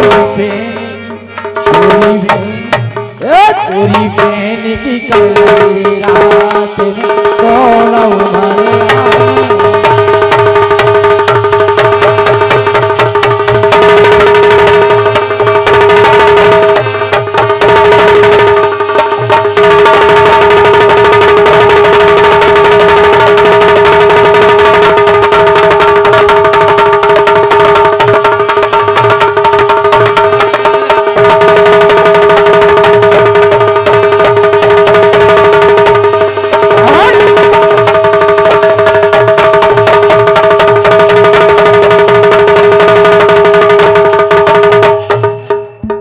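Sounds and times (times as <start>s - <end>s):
fast hand-drumming: 0.0s - 0.7s, 1.4s - 46.0s.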